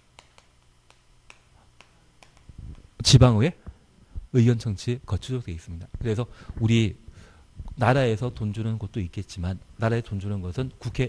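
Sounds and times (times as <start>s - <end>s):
chalk tapping on chalkboard: 0.0s - 2.6s.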